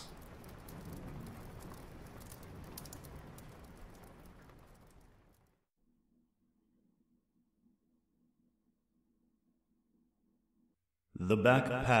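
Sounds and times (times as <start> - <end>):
rain hissing: 0.0 - 5.4
raindrops pattering: 0.0 - 5.6.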